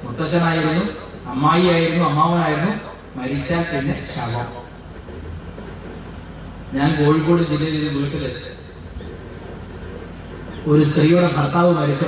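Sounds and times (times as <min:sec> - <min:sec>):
man talking: 0:00.0 - 0:04.7, 0:06.8 - 0:08.6, 0:10.7 - 0:12.0
high-pitched whine: 0:00.0 - 0:12.0
room hiss: 0:00.0 - 0:12.0.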